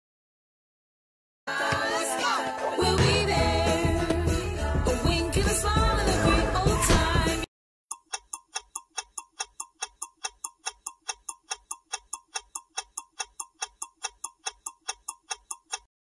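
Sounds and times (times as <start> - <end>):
clock-like timer ticks: 7.9 - 15.9.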